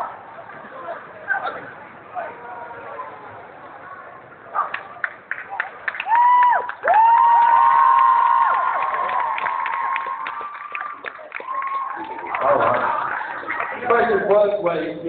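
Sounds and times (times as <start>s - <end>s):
audience cheering and clapping: 4.7s - 14.0s.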